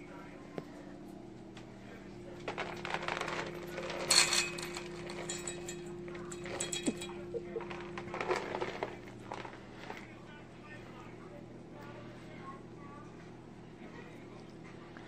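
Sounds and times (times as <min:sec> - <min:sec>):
steady hum: 0:00.0 - 0:15.0
pets clinking food bowls: 0:02.4 - 0:10.2
faint voice: 0:09.6 - 0:15.0.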